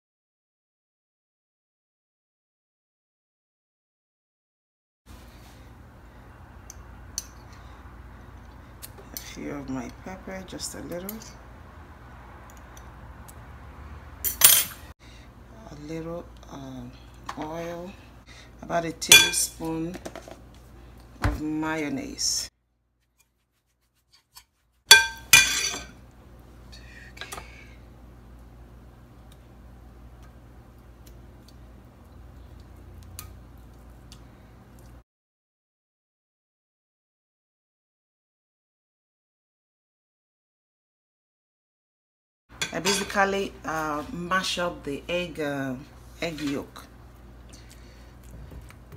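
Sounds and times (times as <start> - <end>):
metal spoon clinking glass bowl: 19.1 - 19.5, 24.9 - 25.9.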